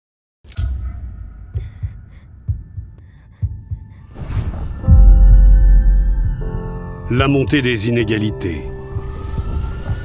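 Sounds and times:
heartbeat thumps: 0:01.2 - 0:07.0.

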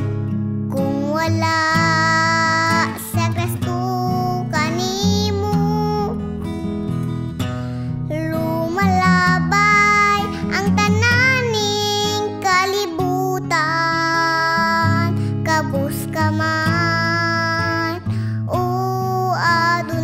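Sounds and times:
girl singing: 0:00.7 - 0:06.4, 0:08.1 - 0:20.0.

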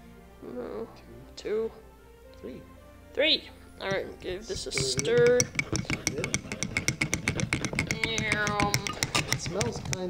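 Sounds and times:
spoon clinking against a mug: 0:04.5 - 0:10.0.

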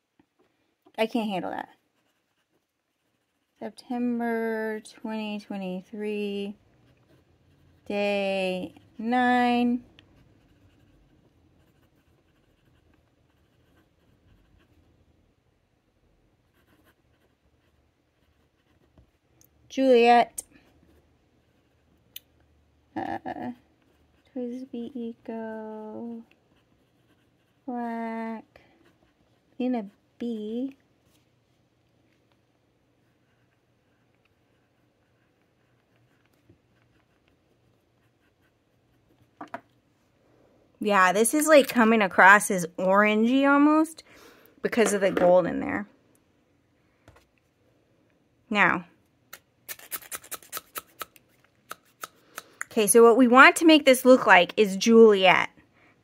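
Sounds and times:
fountain pen scratching on paper: 0:01.7 - 0:04.0, 0:06.8 - 0:14.9, 0:16.4 - 0:19.3, 0:20.6 - 0:22.0, 0:26.2 - 0:27.8, 0:28.7 - 0:30.0, 0:33.0 - 0:39.4.

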